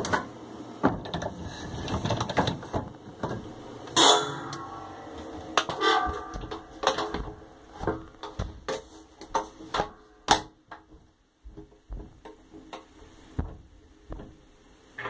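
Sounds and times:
metal tub ringing: 0:04.0 - 0:07.1.

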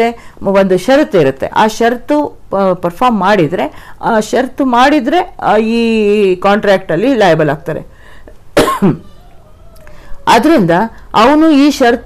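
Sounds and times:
woman coughing: 0:08.6 - 0:09.1.

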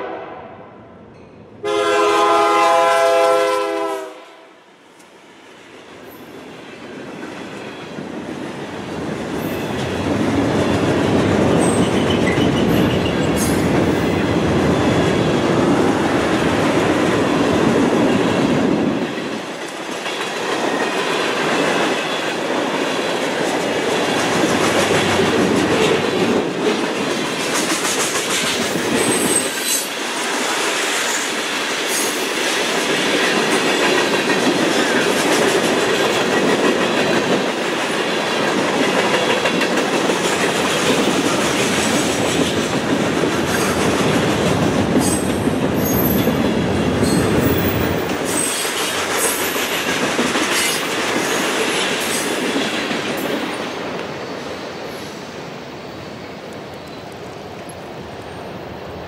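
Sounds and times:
train wheels rumbling: 0:05.5 - 0:59.0.

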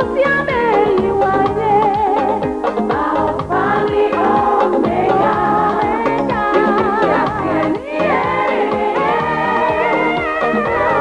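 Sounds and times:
regular drum beat: 0:00.0 - 0:11.0
voices singing together: 0:00.0 - 0:11.0.

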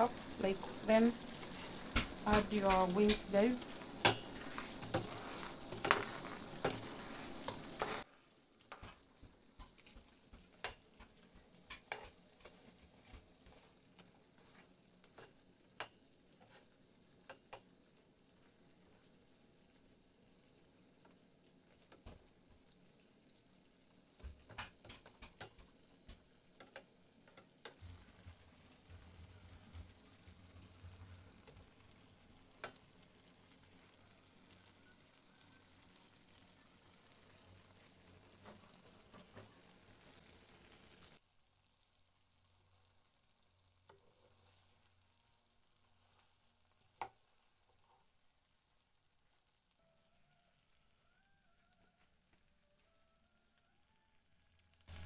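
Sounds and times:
chicken wings sizzling in sauce: 0:00.0 - 0:55.0
spoon clicking against pan: 0:04.0 - 0:05.1.

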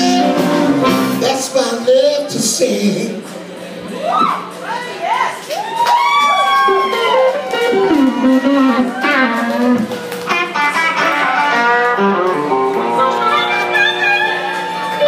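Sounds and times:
sliding electric guitar lead: 0:00.0 - 0:01.6, 0:06.7 - 0:15.0
electric blues band playing: 0:00.0 - 0:03.4, 0:06.1 - 0:15.0.

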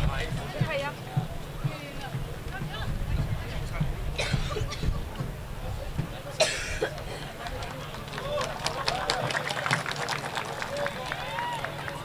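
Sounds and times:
faint background voices: 0:00.0 - 0:12.0
person coughing: 0:06.4 - 0:07.3.

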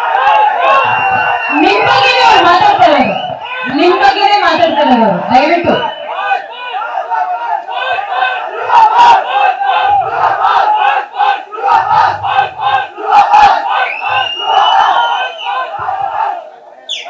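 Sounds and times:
crowd cheering and chanting: 0:00.0 - 0:17.0
drawn-out whistle: 0:00.3 - 0:03.7, 0:05.6 - 0:06.2, 0:13.8 - 0:15.8.

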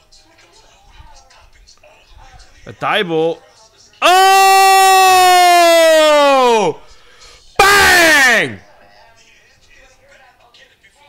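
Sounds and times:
person shouting excitedly: 0:04.0 - 0:06.9, 0:07.6 - 0:08.8.

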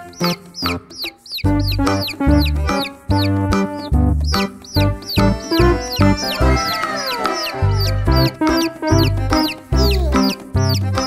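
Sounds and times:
music with deep bass notes: 0:00.0 - 0:06.7, 0:07.6 - 0:11.0
chick peeping: 0:00.0 - 0:11.0.

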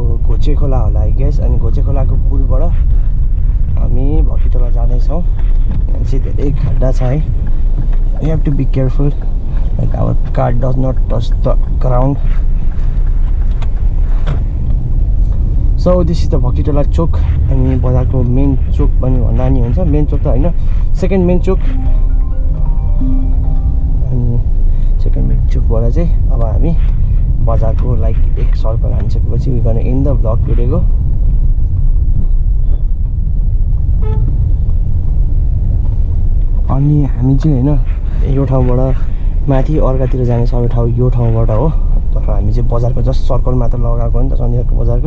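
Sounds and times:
car engine and tyres rumbling: 0:00.0 - 0:21.6, 0:23.6 - 0:45.0
vehicle horn toot: 0:34.0 - 0:34.3.

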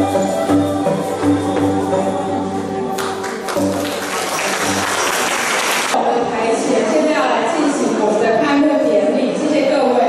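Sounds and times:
held music notes: 0:00.0 - 0:05.0
audience applauding: 0:03.0 - 0:06.0.

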